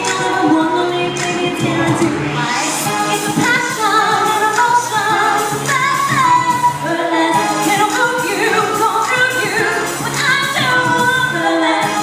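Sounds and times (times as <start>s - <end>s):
amplified pop backing music: 0.0s - 12.0s
female group singing: 0.0s - 12.0s.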